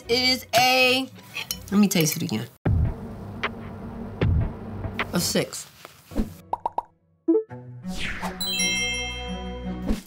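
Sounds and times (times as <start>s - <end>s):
music cue: 7.3s - 9.9s.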